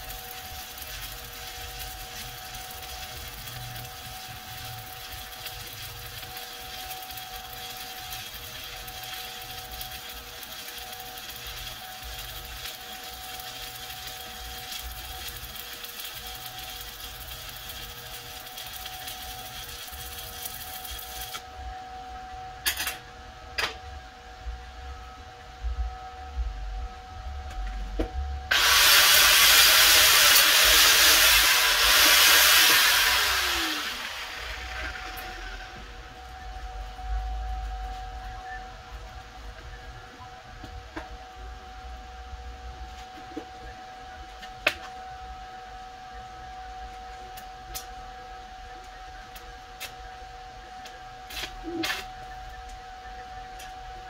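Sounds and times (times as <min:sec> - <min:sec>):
welding arc crackling and hissing: 0:00.0 - 0:21.5, 0:28.5 - 0:40.0, 0:48.7 - 0:54.0
loud rushing power tool noise: 0:28.5 - 0:36.1.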